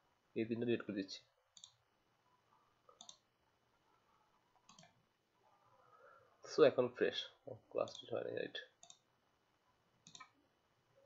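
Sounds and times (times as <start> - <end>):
faint computer mouse clicks: 1.6 - 1.8, 2.9 - 3.2, 4.6 - 5.0, 8.8 - 9.1, 10.0 - 10.4.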